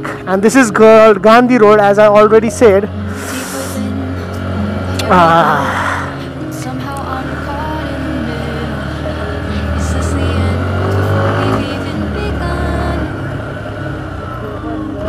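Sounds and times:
background music: 0.0 - 15.0
motorcycle engine running: 0.0 - 15.0.

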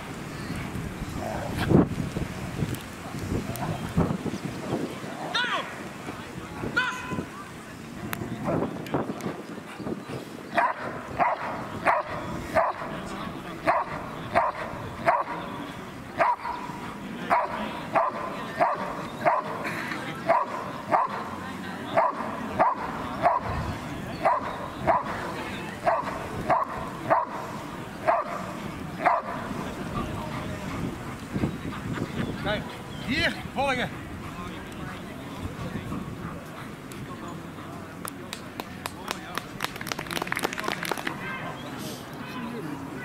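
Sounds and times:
dog barking: 10.6 - 12.9, 13.6 - 15.4, 16.2 - 16.7, 17.3 - 19.6, 20.3 - 21.2, 22.0 - 23.5, 24.2 - 25.2, 25.8 - 27.4, 28.0 - 28.4, 29.0 - 29.4.

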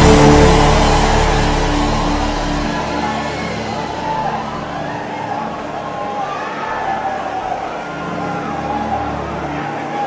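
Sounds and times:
sustained background music: 0.0 - 10.0.

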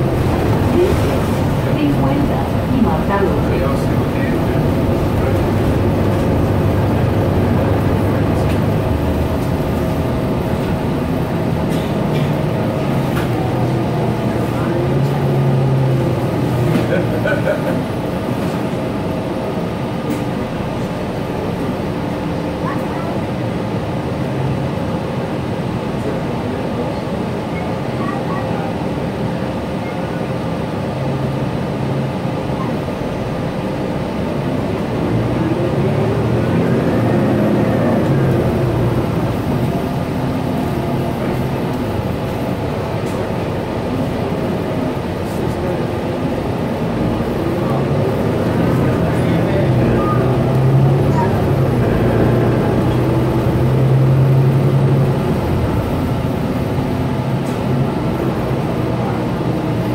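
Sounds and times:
bus engine: 0.0 - 59.9
road noise: 0.0 - 59.9.

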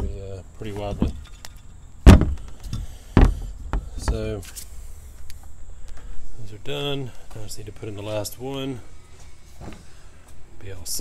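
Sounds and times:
rubber mounts clunking on plastic: 0.8 - 4.3.

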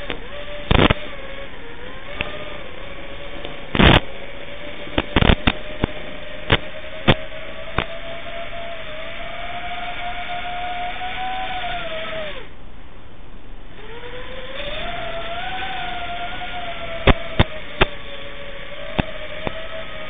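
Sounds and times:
sharp pops: 0.0 - 1.1, 3.4 - 4.1, 5.0 - 7.9
drone motors whining: 0.0 - 12.6, 13.6 - 20.0.

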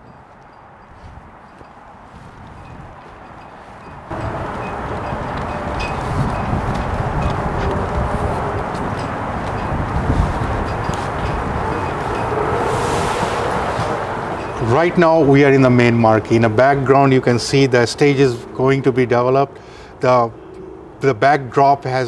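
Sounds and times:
wind buffeting microphone: 0.0 - 21.4
high rushing whoosh: 4.1 - 16.6.

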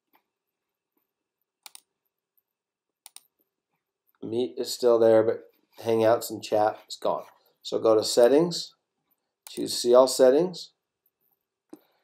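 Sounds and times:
computer mouse clicking: 1.6 - 1.9, 3.0 - 3.3.

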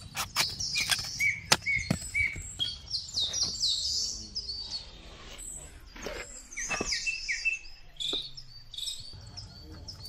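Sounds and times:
songbirds chirping: 0.0 - 10.0.

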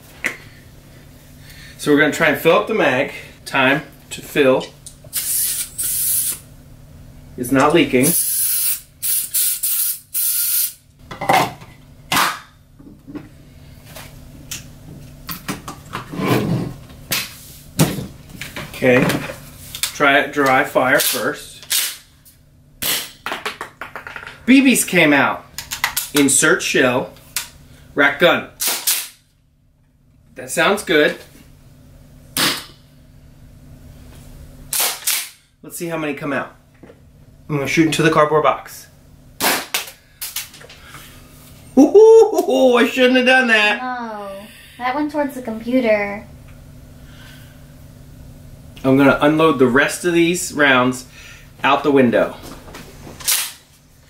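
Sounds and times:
gas hissing: 5.1 - 6.5, 8.0 - 10.8.

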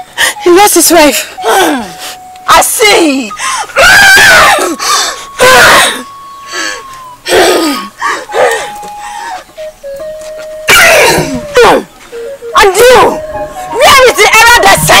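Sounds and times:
background music long notes: 0.0 - 14.9
woman's harsh vocal outbursts: 2.8 - 4.8, 5.4 - 6.1, 10.7 - 11.9.

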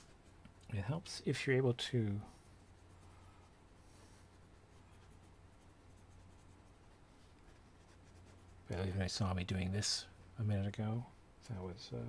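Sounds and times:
pencil scratching on paper: 2.3 - 8.7.

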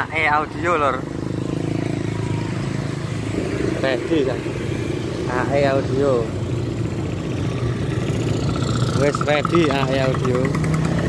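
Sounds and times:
small motorcycle engine running: 0.4 - 11.0.

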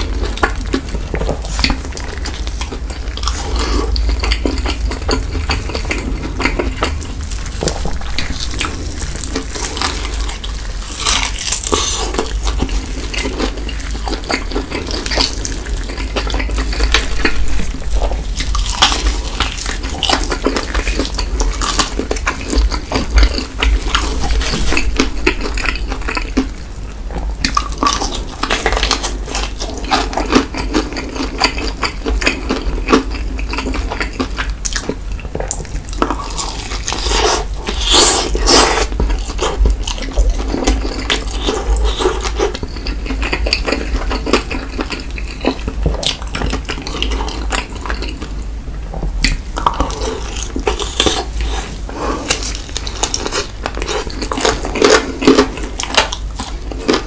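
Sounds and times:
crackles and clicks: 0.0 - 57.0
crunchy chewing: 0.0 - 57.0
wet mouth sounds: 27.1 - 48.4.

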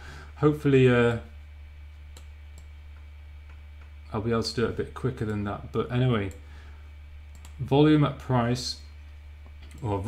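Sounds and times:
steady low hum: 0.0 - 10.0
computer mouse clicks: 2.1 - 4.0, 7.3 - 7.6, 9.5 - 9.9.

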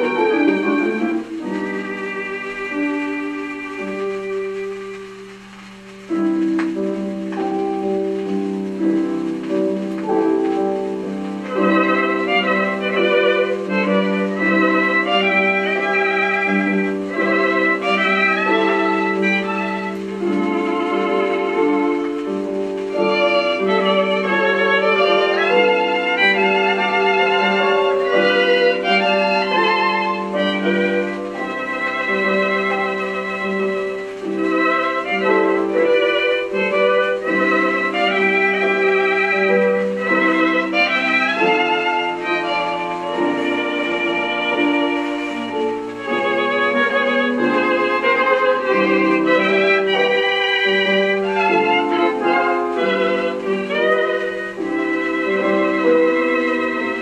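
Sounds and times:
violin music from old record: 0.0 - 57.0.

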